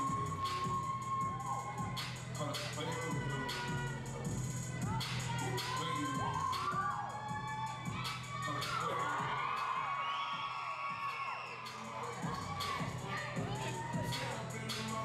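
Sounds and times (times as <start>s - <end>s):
audience cheering and screaming: 0.0s - 15.0s
hip hop dance music: 0.0s - 15.0s.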